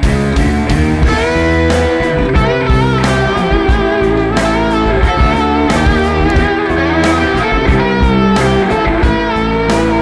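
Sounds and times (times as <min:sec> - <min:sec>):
bass guitar: 0:00.0 - 0:10.0
steady drum beat: 0:00.0 - 0:10.0
electric guitar sustained notes: 0:00.2 - 0:10.0.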